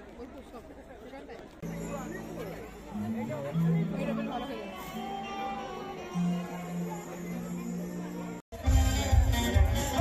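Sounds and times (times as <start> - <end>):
murmur of many voices: 0.0 - 10.0
background music: 1.7 - 10.0.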